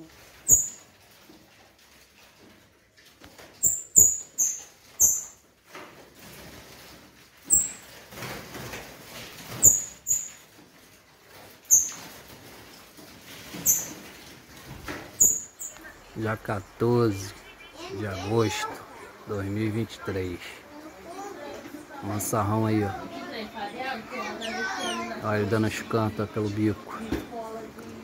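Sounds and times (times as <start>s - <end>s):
songbirds chirping: 0.0s - 1.0s, 3.4s - 5.5s, 9.4s - 28.0s.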